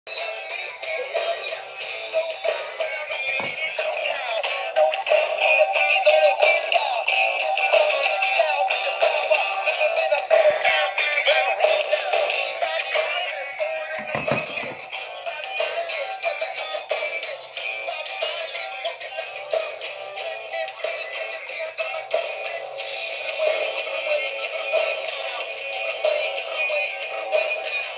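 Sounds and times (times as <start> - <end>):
thin radio music with singing: 0.1 - 27.9.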